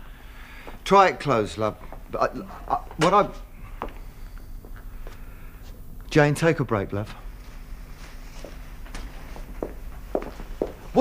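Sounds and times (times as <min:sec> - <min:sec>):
footsteps on studio floor: 0:07.4 - 0:11.0.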